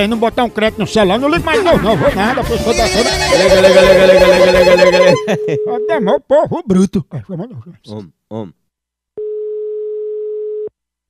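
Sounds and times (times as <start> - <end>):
steady telephone tone: 9.2 - 10.8.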